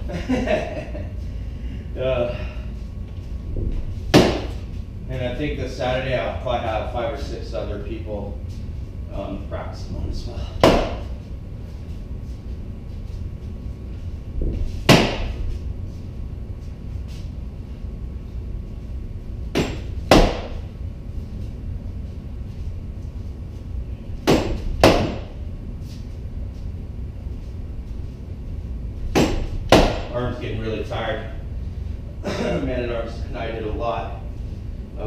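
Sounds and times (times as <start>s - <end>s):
rattan sword whacking a wrapped post: 14.8s - 15.4s.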